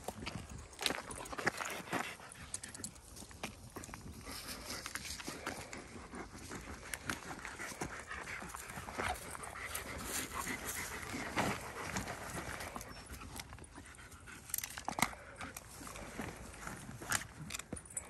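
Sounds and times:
backpack rustling and clicking: 0.0 - 18.0
dogs panting: 0.0 - 18.0.

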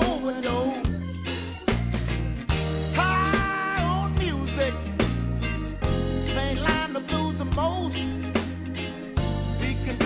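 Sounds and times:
electric blues band playing: 0.0 - 10.0.

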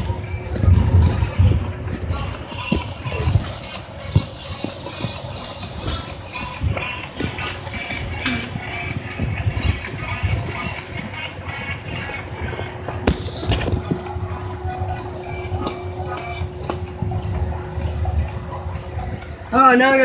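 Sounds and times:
background music: 0.0 - 20.0
microphone rubbing thumps: 0.6 - 14.2.

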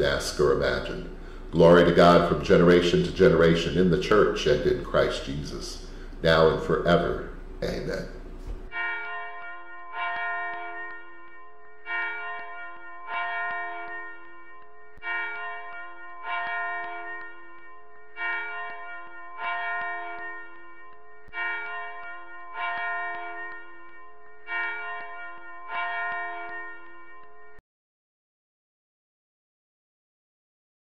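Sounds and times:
bells ringing in slow strikes: 0.0 - 27.6.

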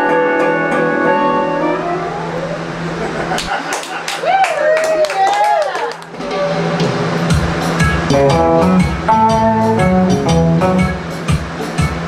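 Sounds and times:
electric guitar through amplifier: 0.0 - 3.5, 6.1 - 12.0.

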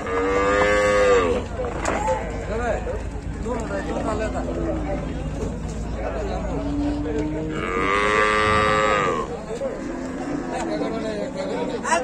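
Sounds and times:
cow mooing: 0.0 - 1.4, 6.8 - 11.0.

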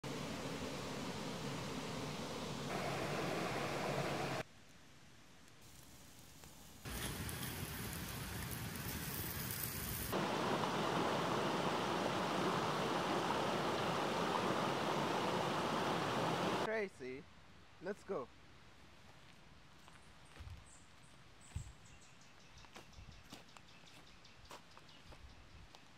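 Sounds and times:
steady hiss: 0.0 - 16.7
stream rushing over rocks: 0.1 - 4.4, 10.1 - 16.7
fish sizzling on hot stone: 5.6 - 13.4.

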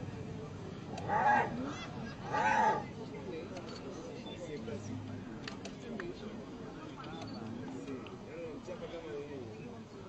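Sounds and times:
hyena squealing distress calls: 1.0 - 1.6, 2.2 - 2.8.

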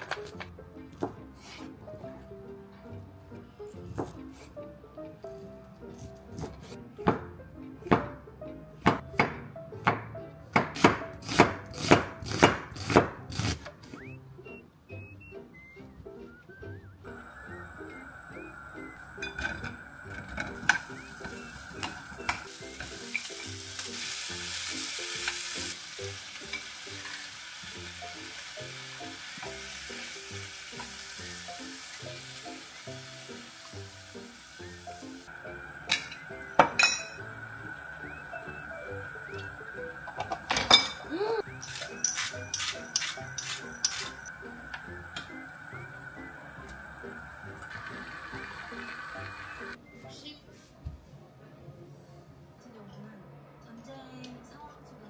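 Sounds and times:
soft background music: 0.0 - 55.0
food sizzling in frying pan: 17.1 - 49.8.

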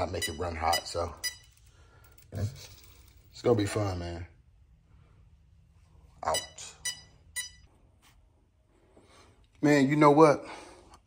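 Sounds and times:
faint room noise: 0.0 - 11.0
short electronic beep: 6.3 - 7.6.

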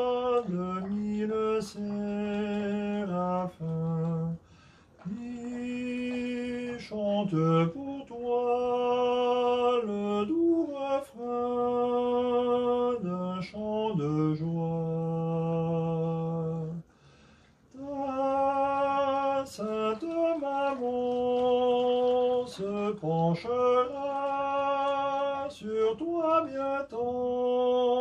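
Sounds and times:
man singing unaccompanied lullaby: 0.0 - 17.0, 17.6 - 28.0.

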